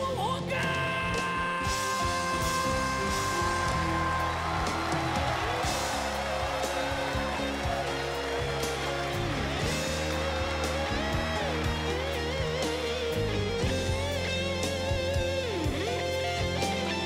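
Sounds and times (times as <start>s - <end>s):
band playing pop ballad: 0.0s - 17.0s.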